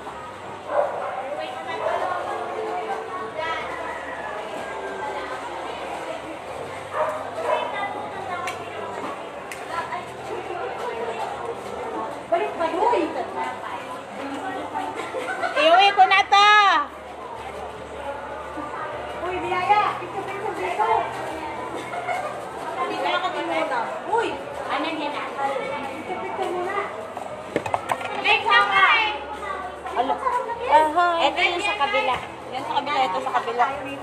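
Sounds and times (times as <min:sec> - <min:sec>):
people chattering: 0:00.0 - 0:34.0.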